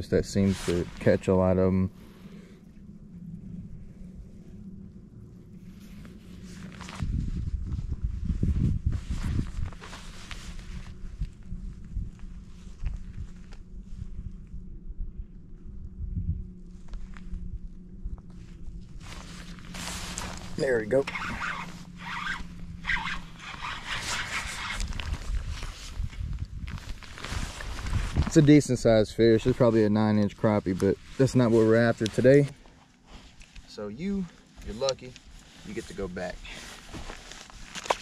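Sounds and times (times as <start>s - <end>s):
trolling motor electric hum: 0.0s - 33.1s
low rumble: 0.0s - 33.9s.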